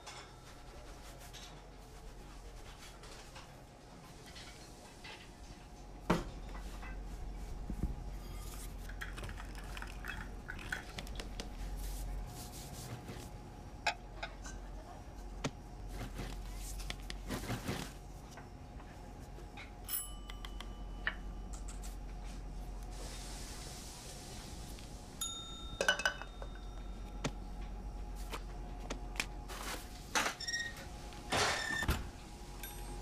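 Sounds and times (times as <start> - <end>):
kitchen room tone: 0.0 - 33.0
small bell ding: 19.9 - 20.9, 25.2 - 26.8.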